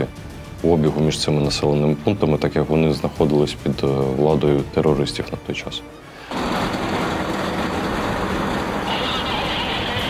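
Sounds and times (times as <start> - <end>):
vehicle engine rumbling: 6.3 - 10.0.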